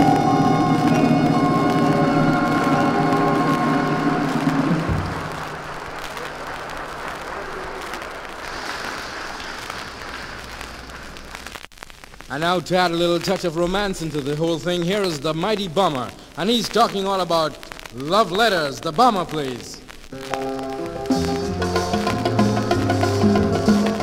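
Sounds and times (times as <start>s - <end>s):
band holding final chord: 0.0s - 7.2s
audience applauding: 0.0s - 11.6s.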